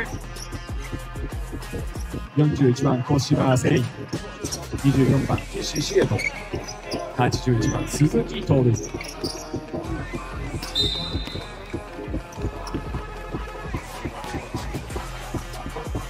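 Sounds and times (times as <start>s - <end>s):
arena music: 0.0s - 16.0s
voices: 2.3s - 12.8s
basketball bouncing on hardwood: 6.0s - 16.0s
short high whistle blast: 10.8s - 11.5s.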